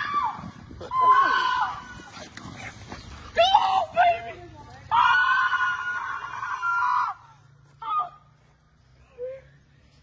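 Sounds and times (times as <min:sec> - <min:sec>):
woman screaming: 0:00.0 - 0:02.0.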